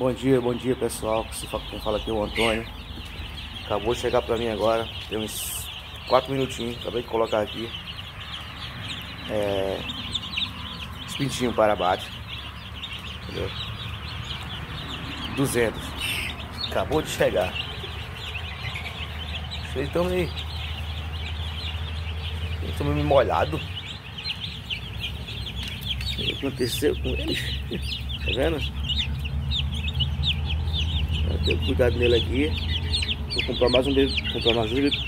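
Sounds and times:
chicks peeping: 0.0s - 35.0s.

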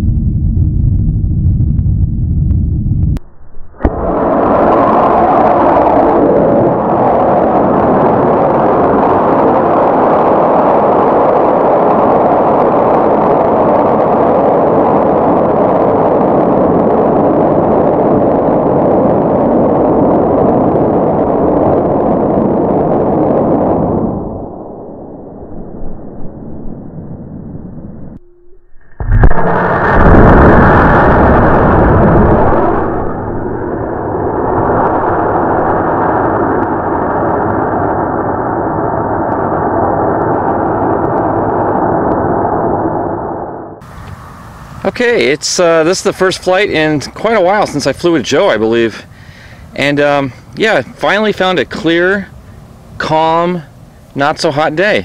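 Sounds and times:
rocket exhaust roar: 0.0s - 28.2s, 29.0s - 55.0s.

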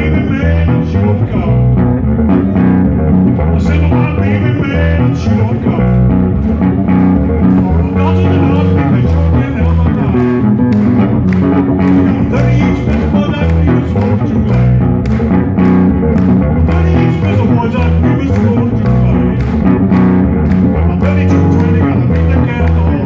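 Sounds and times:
man singing: 0.0s - 2.7s, 3.4s - 6.3s, 7.4s - 10.6s, 11.8s - 15.0s, 16.6s - 19.6s, 20.7s - 23.0s
electric bass guitar line: 0.0s - 23.0s.

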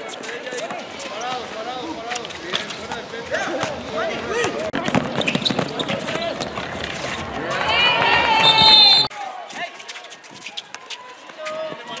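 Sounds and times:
running footsteps: 0.0s - 12.0s
basketball bouncing: 4.4s - 8.9s
players and spectators shouting: 5.8s - 9.8s.

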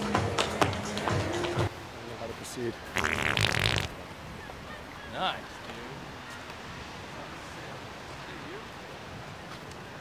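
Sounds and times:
prank fart noise: 3.0s - 4.0s.

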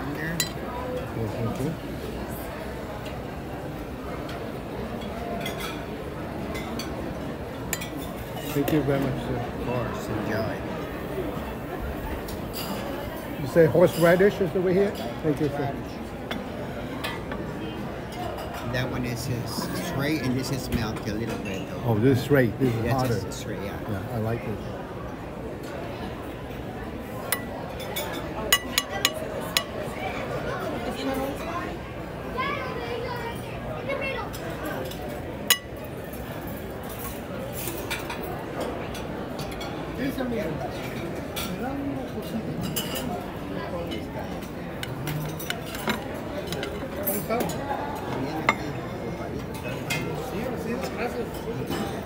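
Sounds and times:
diners chattering: 0.0s - 52.0s
murmur of voices: 0.0s - 52.0s
dishes and cutlery clinking: 0.3s - 1.7s, 4.2s - 7.0s, 7.6s - 9.2s, 12.2s - 15.2s, 19.5s - 21.8s, 22.6s - 23.4s, 27.2s - 29.8s, 34.3s - 39.8s, 40.7s - 52.0s
metal spoon clinking on dish: 7.7s - 8.8s, 27.3s - 29.7s, 34.8s - 35.8s, 43.9s - 48.8s.

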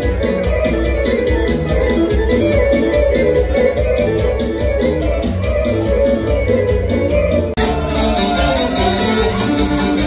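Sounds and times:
electronic keyboard melody: 0.0s - 10.0s
folk dance music: 0.0s - 10.0s.

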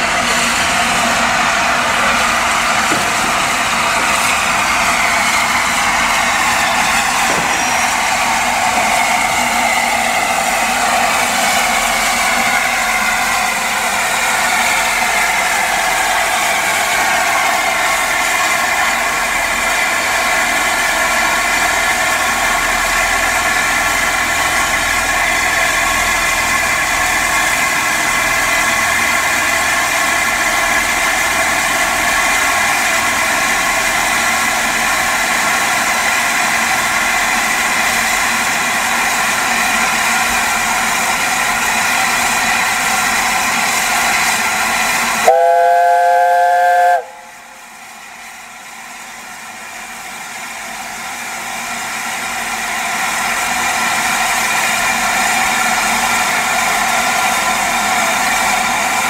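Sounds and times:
steam hissing: 0.0s - 59.0s.

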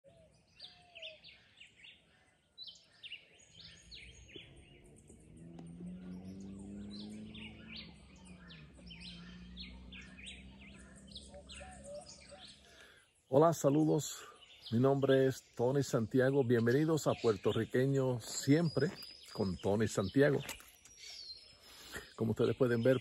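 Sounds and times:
birds chirping: 0.0s - 23.0s.

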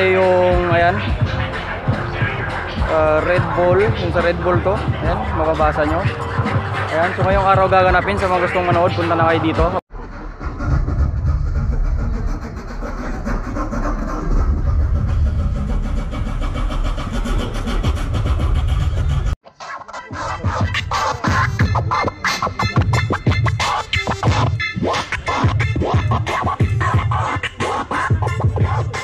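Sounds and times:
loud music with deep bass: 0.0s - 9.8s, 13.5s - 29.0s
vinyl record scratching over a beat: 0.0s - 9.8s, 13.4s - 29.0s.

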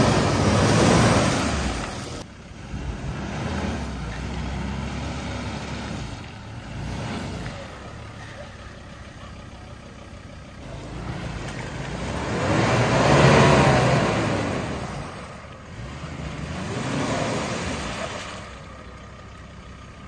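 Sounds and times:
engine revving hard: 0.0s - 7.9s, 10.6s - 18.5s.

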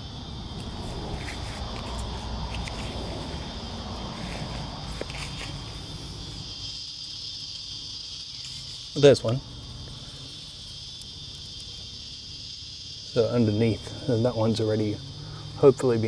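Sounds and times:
insects trilling: 0.0s - 16.0s.

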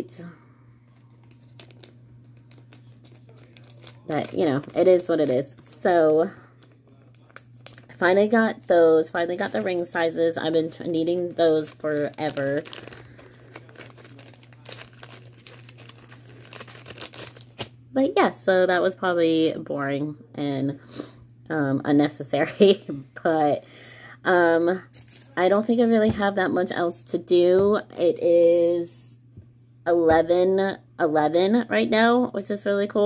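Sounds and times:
low steady hum: 0.0s - 33.0s
plastic packaging crinkling: 0.9s - 17.8s, 24.9s - 25.5s
faint crinkling: 9.3s - 17.7s.

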